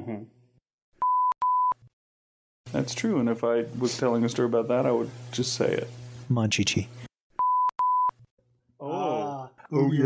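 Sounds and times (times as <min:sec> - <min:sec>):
high censor beep: 0:07.4 - 0:08.1.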